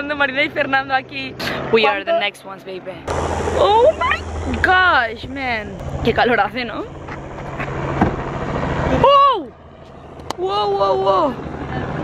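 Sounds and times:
propeller aircraft engine drone: 0:02.6 - 0:12.0.

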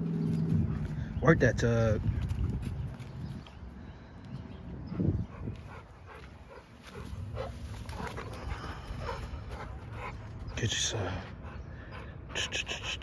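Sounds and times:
dogs playing tug of war: 0:05.7 - 0:10.9.

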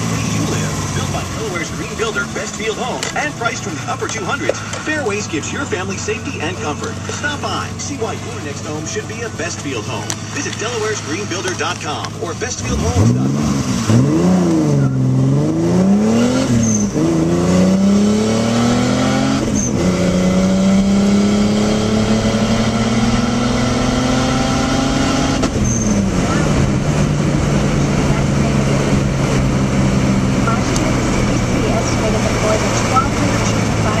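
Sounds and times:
car engine accelerating hard: 0:00.0 - 0:34.0.

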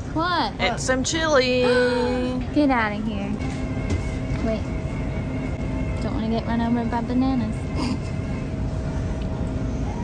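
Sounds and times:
faint steady hum: 0:00.0 - 0:10.0
grocery store background rumble: 0:00.0 - 0:10.0.

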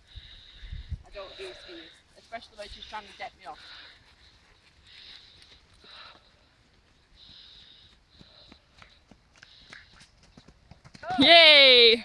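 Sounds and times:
horse hoofbeats on grass: 0:06.6 - 0:12.0.

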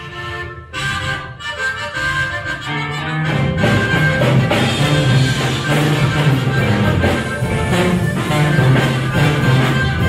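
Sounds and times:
button accordion melody: 0:00.0 - 0:10.0
sousaphone bass: 0:00.0 - 0:10.0
guitars: 0:00.3 - 0:10.0.

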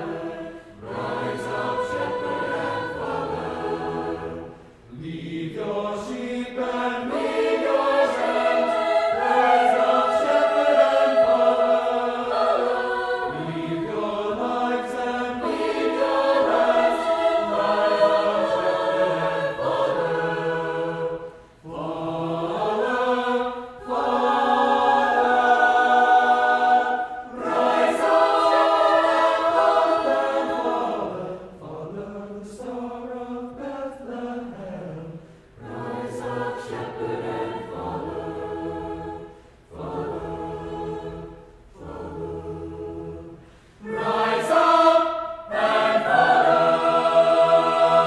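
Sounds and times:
mixed choir singing chords: 0:00.0 - 0:48.0.

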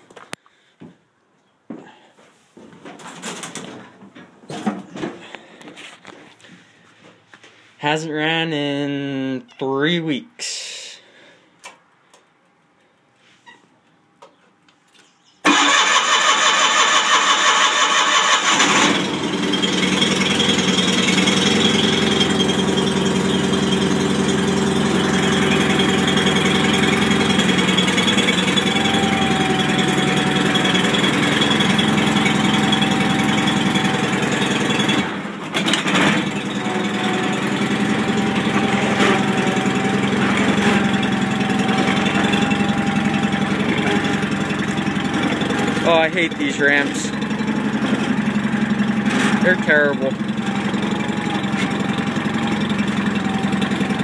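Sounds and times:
starter motor cranking: 0:15.4 - 0:54.0
engine running steadily: 0:15.5 - 0:54.0.

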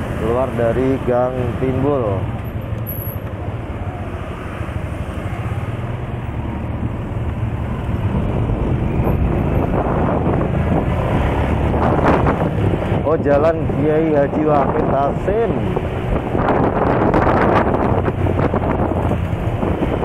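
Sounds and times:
wind on microphone: 0:06.6 - 0:20.0.

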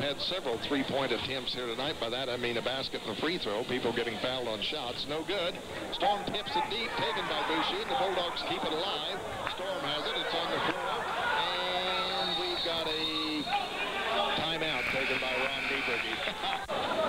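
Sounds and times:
crowd voices in gym: 0:00.0 - 0:17.0.

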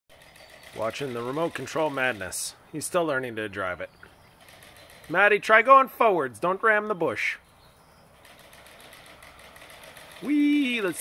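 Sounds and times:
toy car electric motor running: 0:08.3 - 0:11.0.

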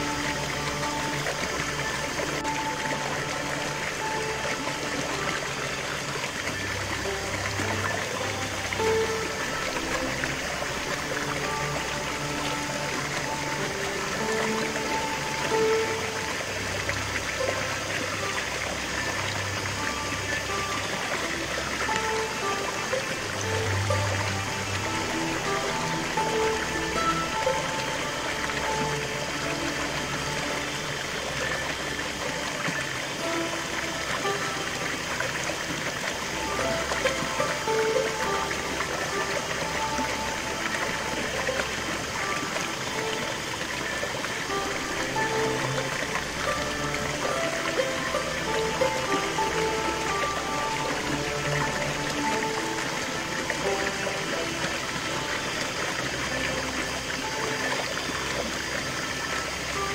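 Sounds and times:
slow music of held notes: 0:00.0 - 0:59.9
stream cascading over rocks: 0:00.0 - 0:59.9.

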